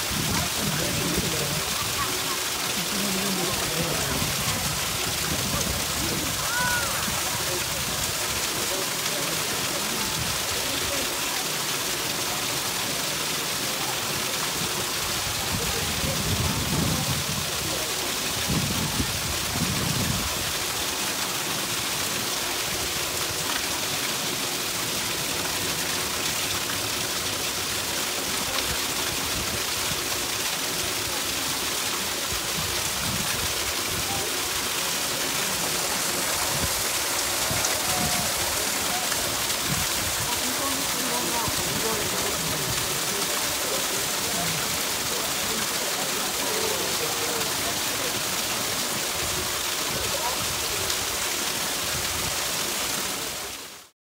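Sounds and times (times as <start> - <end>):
water rushing through gates: 0.0 - 53.9.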